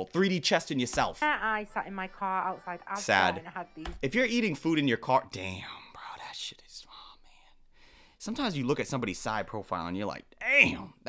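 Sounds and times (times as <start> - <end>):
person whispering: 5.4 - 7.6.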